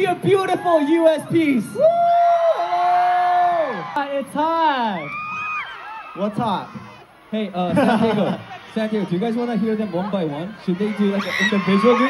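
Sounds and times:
crowd screaming and cheering: 0:00.0 - 0:12.0.

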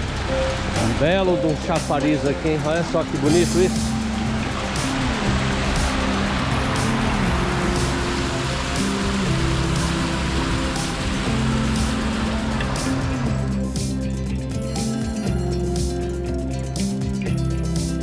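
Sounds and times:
fountain water splashing: 0:00.0 - 0:16.9
background music: 0:00.0 - 0:18.0.

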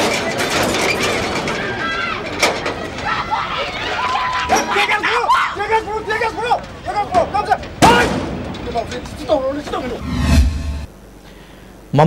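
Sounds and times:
people talking and calling out: 0:00.0 - 0:10.1
loud bang: 0:07.8 - 0:08.7, 0:10.0 - 0:10.9.

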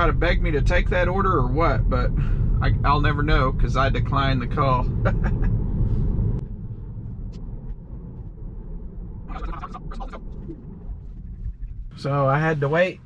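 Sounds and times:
low cabin hum: 0:00.0 - 0:13.0
tyre and road rumble: 0:00.0 - 0:13.0
man laughing: 0:04.8 - 0:05.6.

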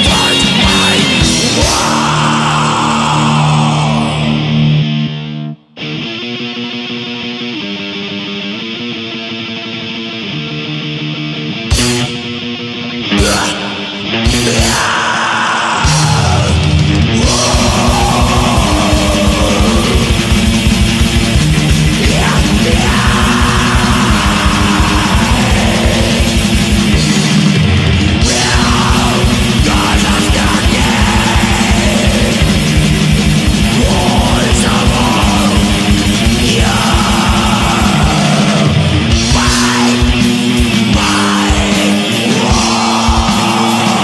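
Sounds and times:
distorted electric guitar riff: 0:00.0 - 0:44.0
heavy metal band playing: 0:00.0 - 0:44.0.

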